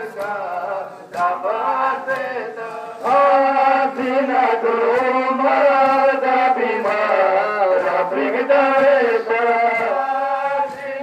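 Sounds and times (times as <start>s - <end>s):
dull rhythmic beat: 0.0s - 11.0s
men chanting in held notes: 0.0s - 11.0s.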